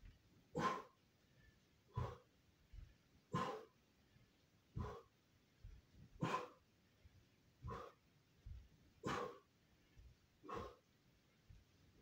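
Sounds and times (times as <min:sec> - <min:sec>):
bare feet thudding on floor: 0:01.9 - 0:03.6, 0:04.7 - 0:06.5, 0:07.6 - 0:10.7.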